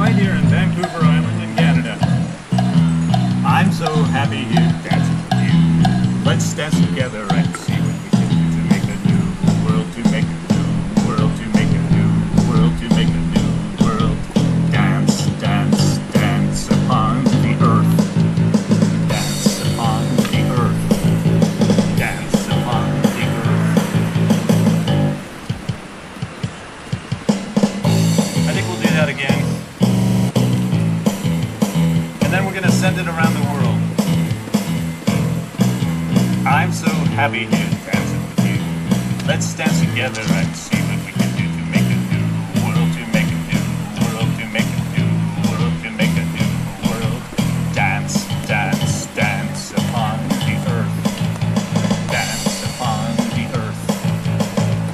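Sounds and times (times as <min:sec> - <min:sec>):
electronic keyboard music: 0:00.0 - 0:54.9
man singing into a microphone: 0:09.5 - 0:17.6.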